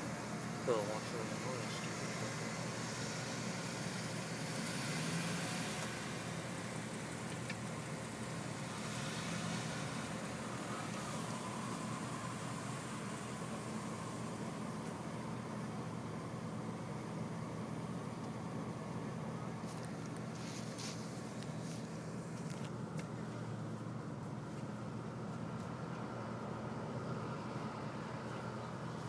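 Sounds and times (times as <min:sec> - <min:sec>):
car driving slowly past: 0:00.0 - 0:29.0
traffic hum: 0:00.0 - 0:29.0.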